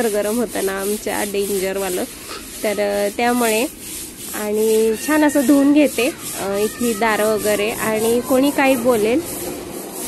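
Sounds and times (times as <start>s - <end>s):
woman talking: 0.0s - 9.2s
broom scrubbing wet floor: 0.0s - 10.0s.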